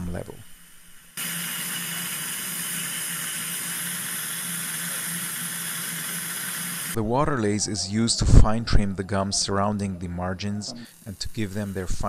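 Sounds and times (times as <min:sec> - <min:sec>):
dental drill high hiss: 0:00.0 - 0:07.0, 0:10.8 - 0:12.0.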